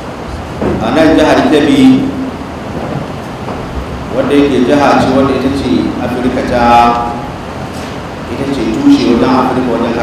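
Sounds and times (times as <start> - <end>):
low rumble of background noise: 0.0 - 10.0.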